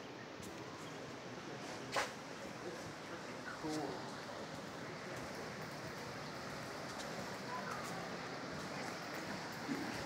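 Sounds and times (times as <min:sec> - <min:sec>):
creek rushing through gorge: 0:00.6 - 0:10.0.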